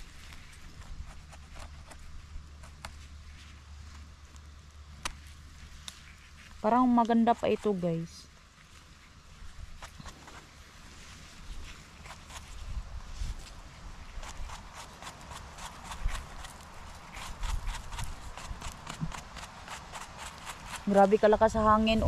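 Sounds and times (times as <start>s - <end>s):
brush scraping mushroom: 0.0s - 4.4s, 5.0s - 22.0s
wind rumble on microphone: 9.2s - 14.6s.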